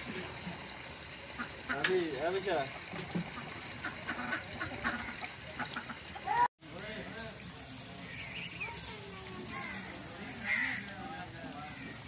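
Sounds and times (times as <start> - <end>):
ducks quacking: 3.2 - 6.3.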